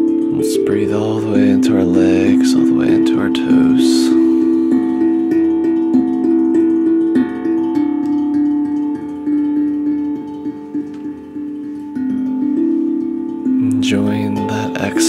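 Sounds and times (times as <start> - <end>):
steel tongue drum notes: 0.0 - 15.0.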